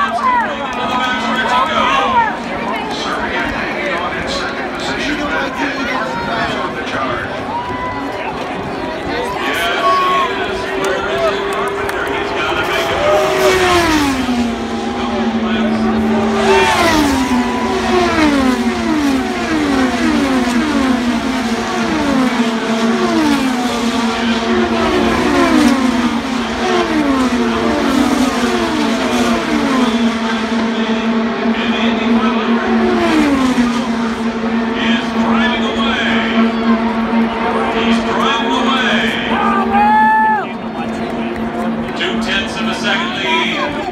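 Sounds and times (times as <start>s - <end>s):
race cars passing at speed: 0.0s - 43.9s.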